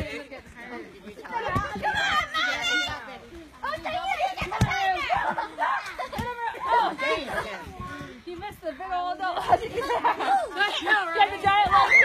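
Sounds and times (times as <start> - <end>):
children calling out: 10.2 - 12.0.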